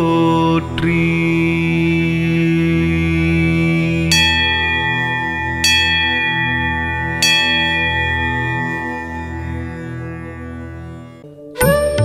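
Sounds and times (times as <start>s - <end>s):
steady low drone: 0.0s - 11.2s
bell ringing: 3.9s - 11.2s.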